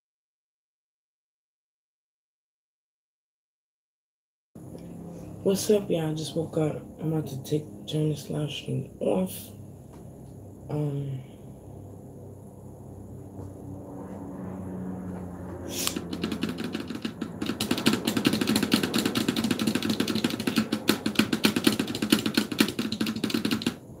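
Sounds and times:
fast mechanical keyboard typing: 15.8 - 23.8.

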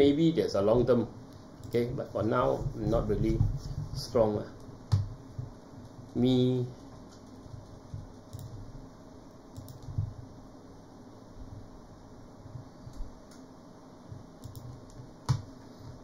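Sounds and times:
low room hum: 0.0 - 16.0
keyboard and mouse clicks: 6.9 - 8.6, 9.6 - 10.1, 14.4 - 15.5.

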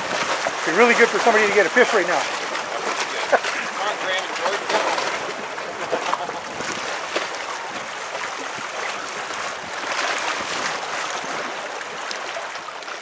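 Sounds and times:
waves splashing against wall: 0.0 - 13.0.

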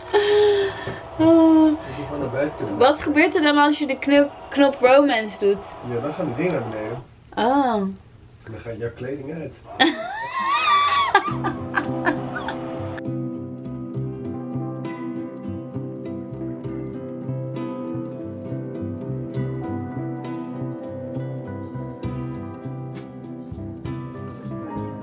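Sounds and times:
woman laughing: 0.0 - 1.7, 9.7 - 12.7
woman humming long notes: 0.0 - 1.9
background music: 0.0 - 7.1, 11.2 - 25.0.

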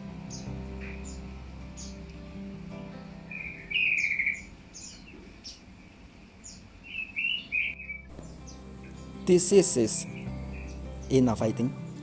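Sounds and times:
faint background music: 0.0 - 12.0
birds chirping: 0.2 - 2.4, 3.2 - 12.0
bird warbling calls: 3.3 - 5.7, 6.4 - 8.6, 9.8 - 11.2.

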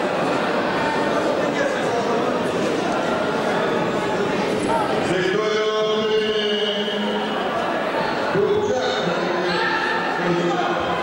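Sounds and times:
crowd chatter echoing: 0.0 - 11.0.

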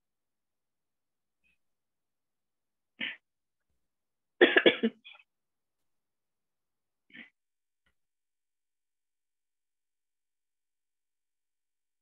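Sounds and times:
person coughing: 4.4 - 5.2.

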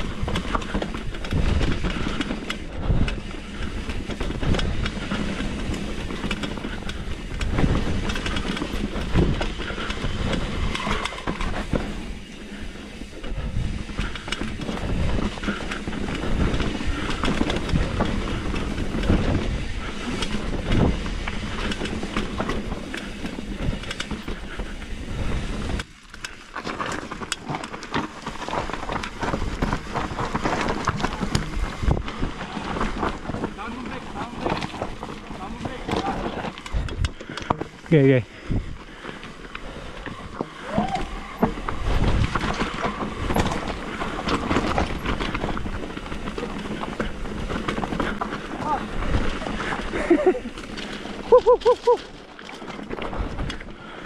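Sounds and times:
bike rattling over rocks: 0.0 - 54.0
bike tyres rumbling on dirt: 0.0 - 54.0.

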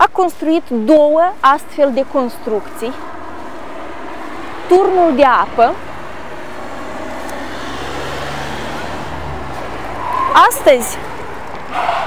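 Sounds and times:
car passing: 1.6 - 12.0.

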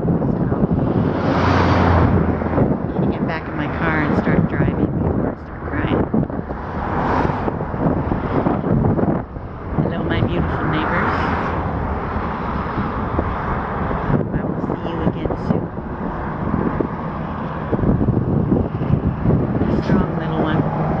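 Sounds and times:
strong wind buffeting microphone: 0.0 - 21.0.

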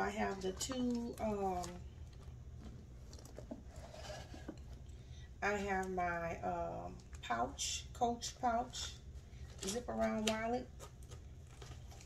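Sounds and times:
low steady hum: 0.0 - 12.0
leather handbag handling: 0.5 - 4.8.

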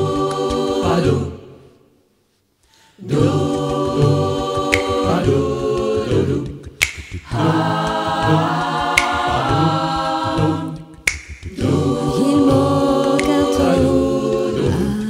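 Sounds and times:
male vocal group singing a cappella: 0.0 - 1.7, 2.9 - 15.0
finger snaps: 4.6 - 5.4, 6.2 - 9.6, 10.3 - 11.7, 13.0 - 13.8.

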